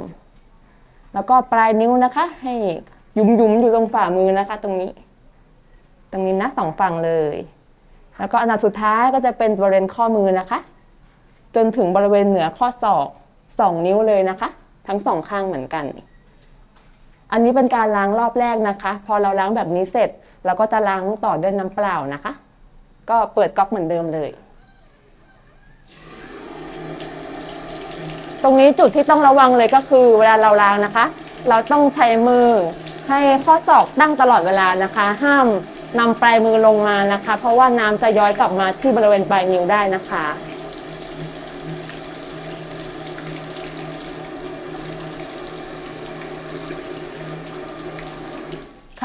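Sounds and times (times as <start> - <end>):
tap water running onto hands: 25.9 - 49.0.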